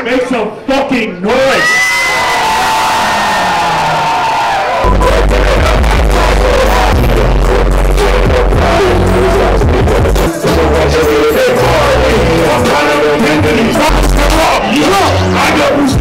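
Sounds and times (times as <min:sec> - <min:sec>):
crowd noise: 0:00.0 - 0:16.0
hip-hop music with heavy bass: 0:04.8 - 0:16.0.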